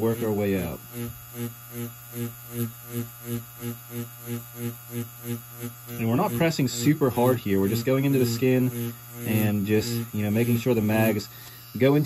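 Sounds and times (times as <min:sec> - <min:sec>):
tattoo machine humming: 0:00.0 - 0:12.0.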